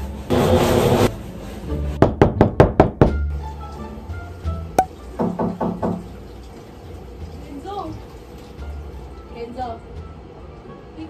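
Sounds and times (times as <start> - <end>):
rapid knocks on door: 2.0 - 3.2, 5.2 - 6.1.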